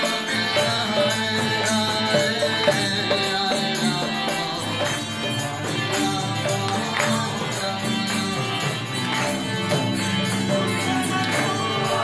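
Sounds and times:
chanting: 0:00.0 - 0:12.0
jingling hand percussion: 0:00.0 - 0:12.0
sustained pitched instruments: 0:00.0 - 0:12.0.

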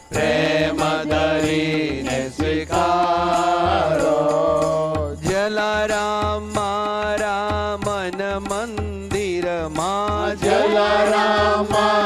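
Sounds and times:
devotional chant singing: 0:00.0 - 0:12.0
percussion beat: 0:00.0 - 0:12.0.

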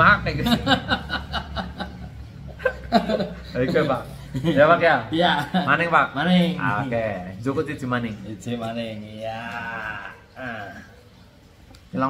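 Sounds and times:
men laughing: 0:00.3 - 0:06.8.

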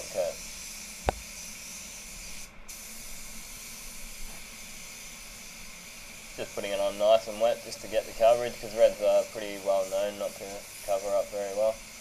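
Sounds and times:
spray gun hissing: 0:00.0 - 0:12.0.

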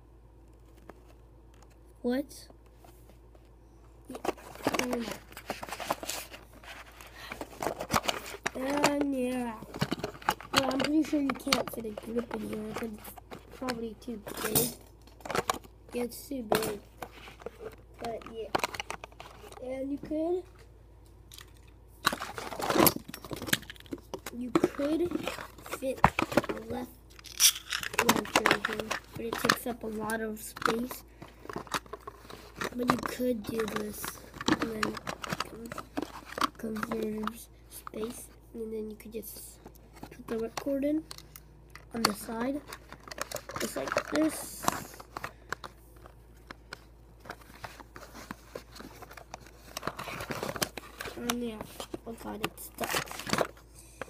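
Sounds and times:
plastic parts clicking and rattling: 0:04.1 - 0:19.9, 0:21.3 - 0:38.2, 0:39.6 - 0:53.6
cardboard box rustling: 0:42.3 - 0:45.3, 0:47.2 - 0:53.6.

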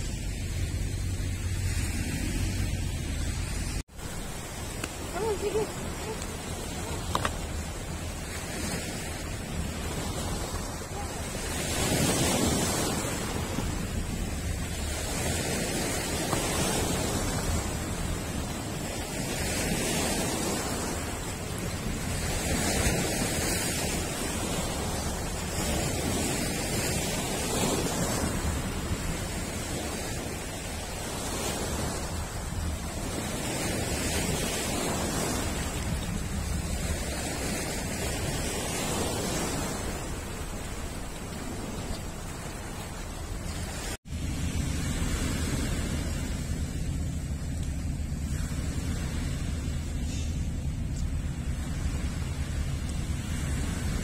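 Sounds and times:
sea waves on pebbly shore: 0:00.0 - 0:54.0.

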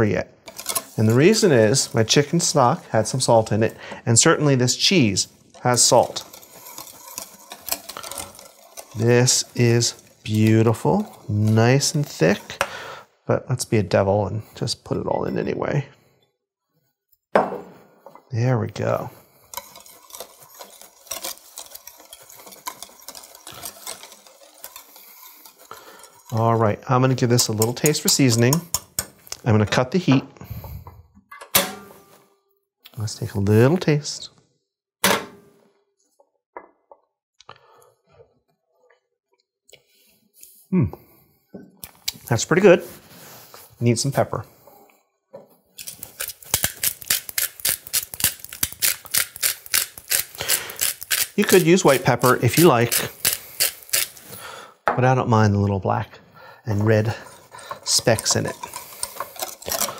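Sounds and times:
whisk clicking and scraping pot: 0:00.4 - 0:13.0, 0:18.6 - 0:29.9, 0:45.8 - 0:54.6, 0:56.7 - 0:59.9
pepper mill grinding: 0:00.5 - 0:12.7, 0:18.8 - 0:29.5, 0:45.8 - 0:54.5, 0:57.1 - 0:59.9.

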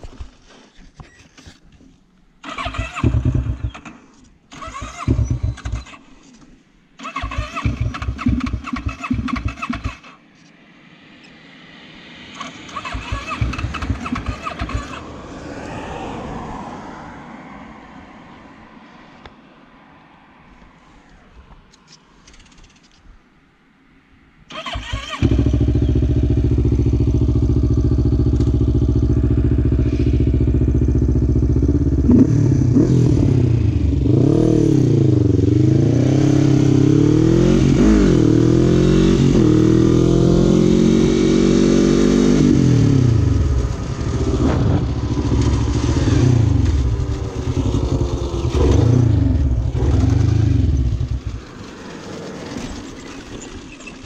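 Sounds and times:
quad engine starting and revving: 0:02.4 - 0:06.0, 0:07.0 - 0:10.2, 0:12.4 - 0:15.1, 0:24.5 - 0:54.0.

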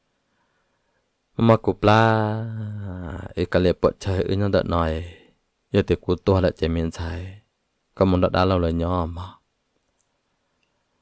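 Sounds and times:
narrator speaking: 0:01.4 - 0:09.4
faint click: 0:09.8 - 0:10.8.

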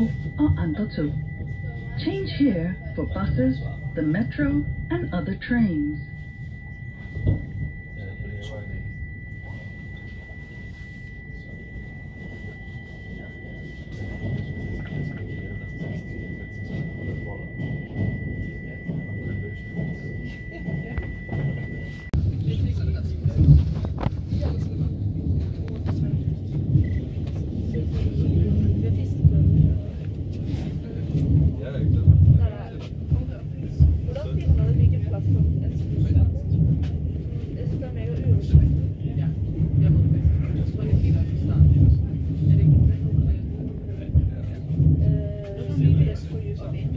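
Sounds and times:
thin steady high tone: 0:00.0 - 0:22.2
train wheels rumbling on rail: 0:00.0 - 0:46.9.

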